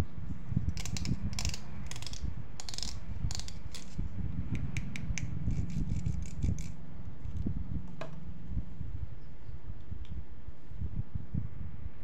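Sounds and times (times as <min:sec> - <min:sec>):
low steady rumble: 0:00.0 - 0:12.0
plucking plastic comb teeth: 0:00.8 - 0:04.0.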